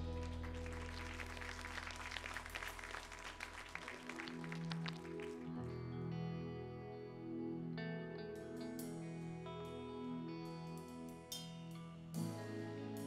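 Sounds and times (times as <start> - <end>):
congregation applauding: 0.0 - 6.0
soft music: 0.0 - 13.0.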